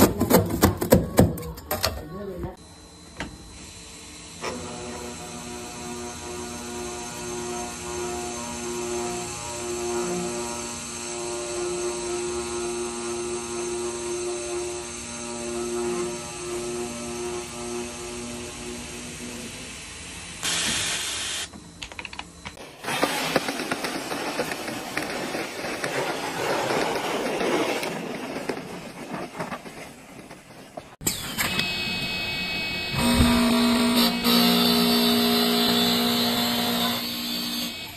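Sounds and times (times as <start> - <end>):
snow shovel scraping snow: 22.7 - 30.8.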